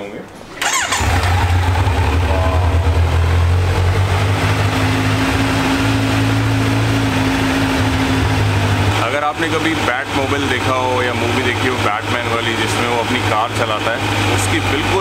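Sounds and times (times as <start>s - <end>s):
motorcycle engine idling: 0.6s - 15.0s
higher hum: 1.0s - 10.9s.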